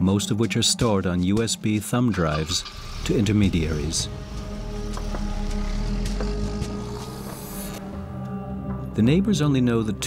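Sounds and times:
background music: 0.0s - 10.0s
car engine running: 2.4s - 8.2s.

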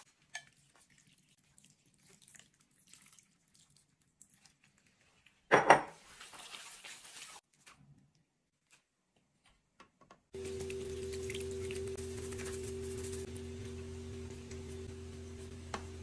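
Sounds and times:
steady hum with low tones: 10.4s - 16.0s.

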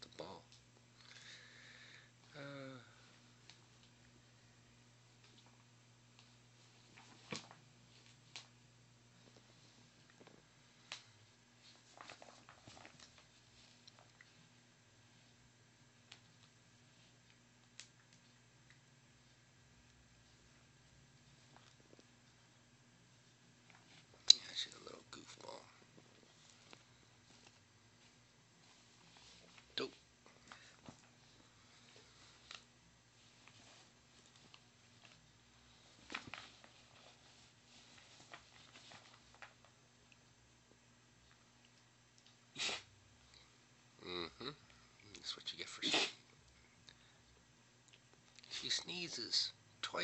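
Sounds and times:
low steady hum: 0.0s - 50.0s
soft clicks and rustles: 5.0s - 42.5s.

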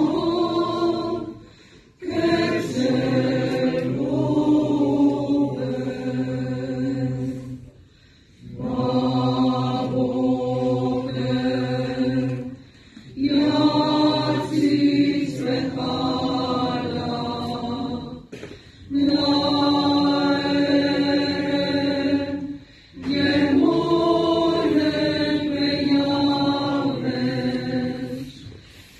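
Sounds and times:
choir singing chant: 0.0s - 7.8s, 8.4s - 18.3s, 18.9s - 28.9s.

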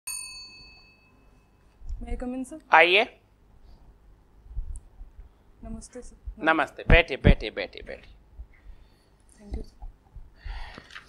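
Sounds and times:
desk call bell ding: 0.1s - 1.7s.

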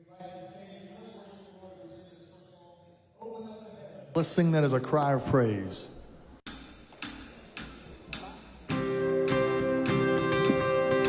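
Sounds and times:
band with strummed acoustic guitar: 8.7s - 11.0s.

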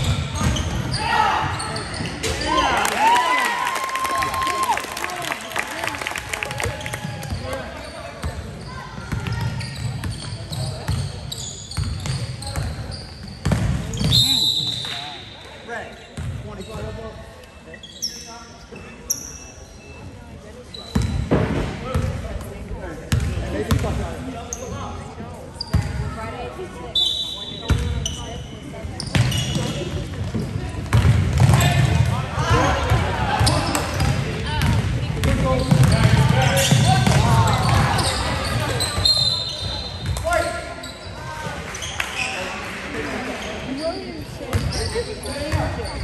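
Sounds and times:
sneakers squeaking: 0.0s - 2.7s, 6.6s - 22.2s, 23.1s - 26.2s, 26.8s - 42.7s, 43.3s - 46.0s.

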